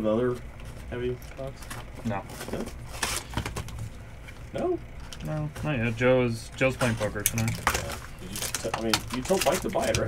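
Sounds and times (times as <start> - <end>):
wrapper tearing and crinkling: 7.5 - 10.0.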